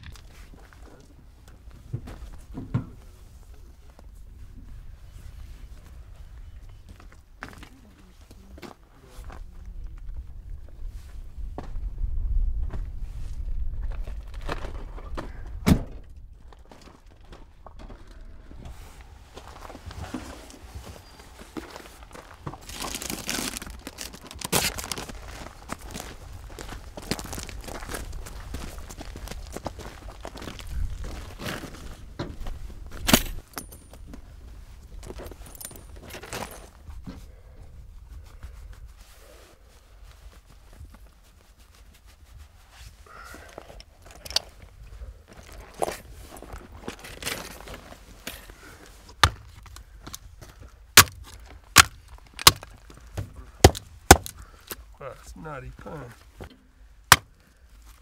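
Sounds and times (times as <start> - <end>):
low rumble: 9.4 - 16.6
rustling of fabric and bags: 16.4 - 55.0
light thuds and clinks: 33.0 - 34.2, 35.0 - 37.2.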